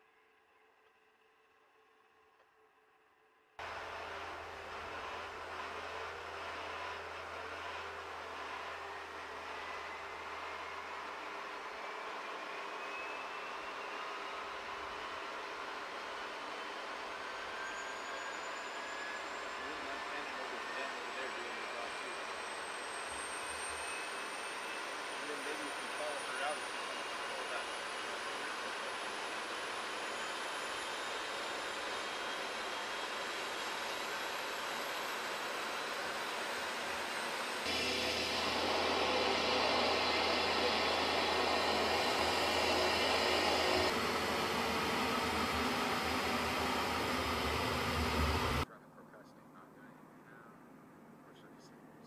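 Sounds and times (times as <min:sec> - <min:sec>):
turboprop engine running: 0:03.6 - 0:49.7
faint high whine rising: 0:03.6 - 0:50.6.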